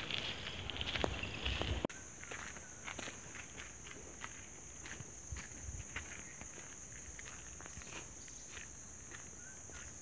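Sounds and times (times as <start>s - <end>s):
footsteps on forest path: 0.0s - 10.0s.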